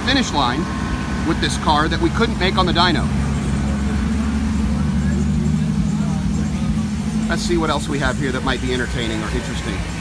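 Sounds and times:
engine droning: 0.0s - 10.0s.

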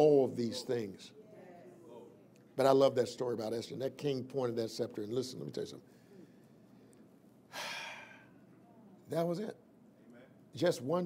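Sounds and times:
man sighing loudly: 7.5s - 8.4s.

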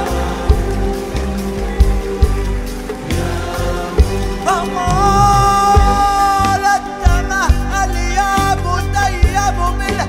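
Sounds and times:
arabic ensemble strings and keyboard: 0.0s - 10.0s
lead voice singing: 0.0s - 10.0s
deep drum strikes: 4.0s - 7.8s.

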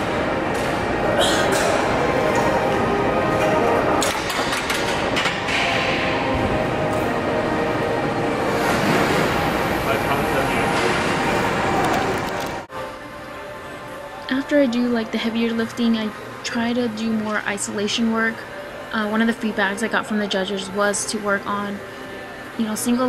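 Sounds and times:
music: 12.2s - 23.0s.

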